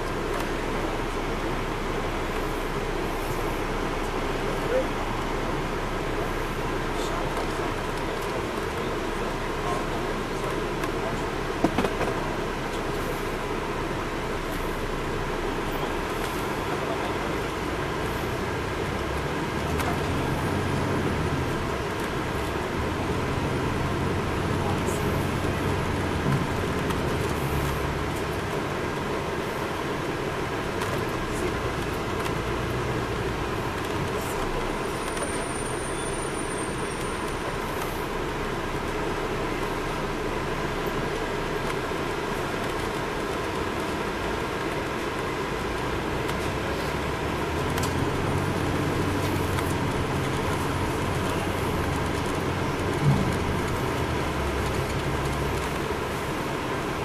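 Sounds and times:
diesel engine running: 0:00.0 - 0:57.0
road noise: 0:00.0 - 0:57.0.

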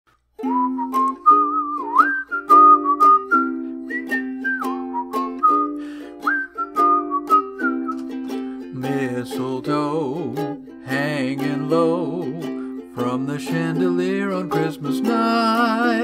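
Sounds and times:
strummed ukulele: 0:00.1 - 0:16.0
man whistling a melody: 0:00.4 - 0:09.4, 0:10.2 - 0:16.0.

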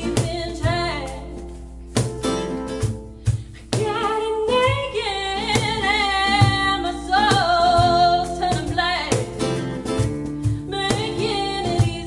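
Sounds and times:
woman singing: 0:00.0 - 0:01.6, 0:03.6 - 0:12.0
cajon drum beats: 0:00.0 - 0:12.0
strummed acoustic guitar: 0:00.0 - 0:12.0.

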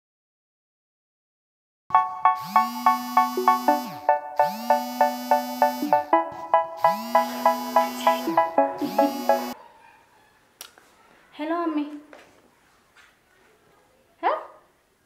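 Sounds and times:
phone ringtone melody: 0:01.9 - 0:09.6.

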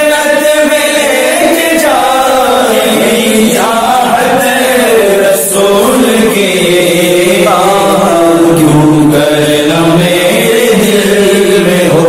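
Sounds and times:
man singing long held notes: 0:00.0 - 0:12.0.

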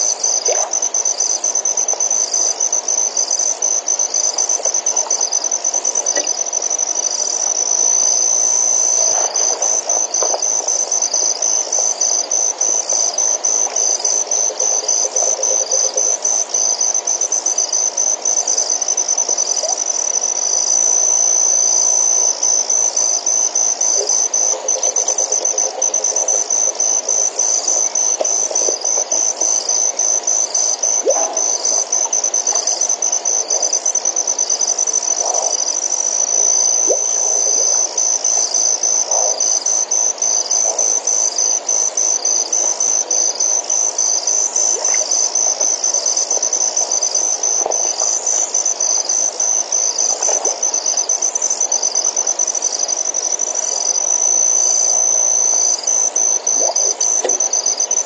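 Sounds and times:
night insects trilling: 0:00.0 - 0:58.0.

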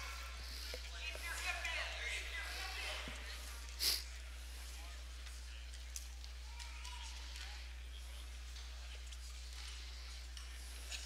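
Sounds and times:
people talking in echoing gym: 0:00.0 - 0:11.0.

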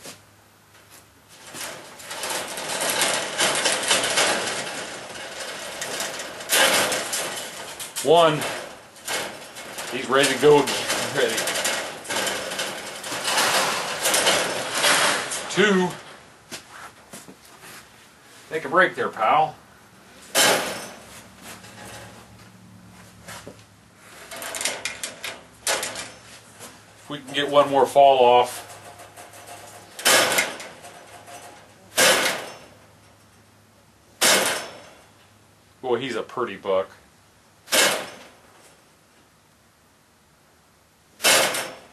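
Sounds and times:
rabbits scuffling on wire floor: 0:00.8 - 0:18.7, 0:20.7 - 0:32.8.

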